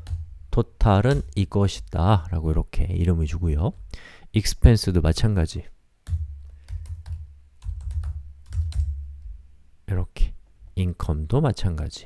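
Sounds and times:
typing on computer keyboard: 6.1 - 9.0.

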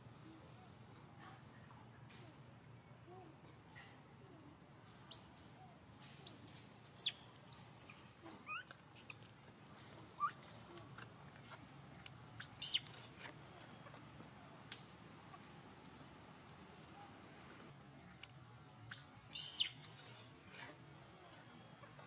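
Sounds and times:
birds chirping: 6.2 - 9.2, 12.3 - 13.0, 18.7 - 20.0.

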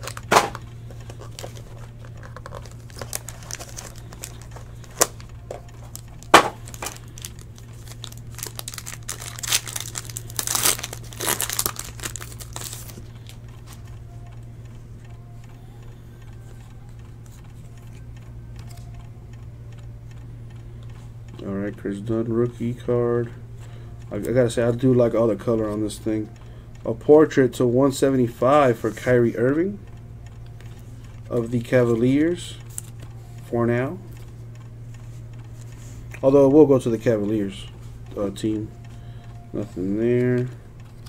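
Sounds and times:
foil wrapper crinkling and tearing: 0.0 - 13.4
handling of cards: 0.0 - 13.9
steady low hum: 0.0 - 41.0.

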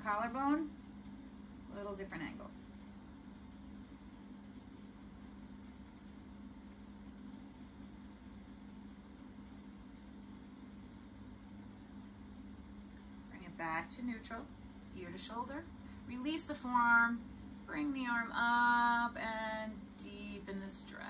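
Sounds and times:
fan humming: 0.0 - 21.0.

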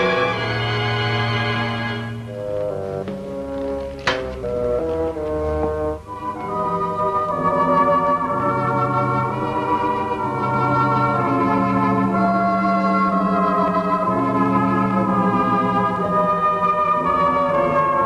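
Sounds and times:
organ chords: 0.0 - 18.0.

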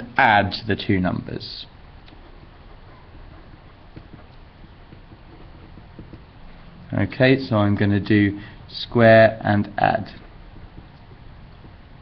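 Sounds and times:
pencil writing on paper: 2.1 - 6.5, 10.1 - 12.0.

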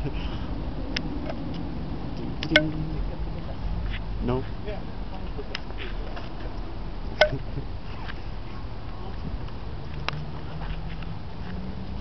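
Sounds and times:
outdoor background rumble: 0.0 - 12.0
sharp click: 2.4 - 2.8.

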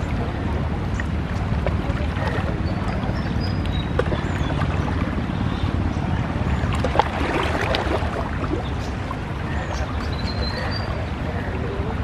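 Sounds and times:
boat diesel engine drone: 0.0 - 12.0
river water rushing: 0.0 - 12.0.

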